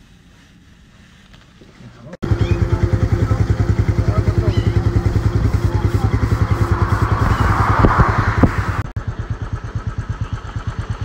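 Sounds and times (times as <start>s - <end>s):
faint outdoor background: 0.0s - 11.0s
motorcycle engine idling: 2.2s - 11.0s.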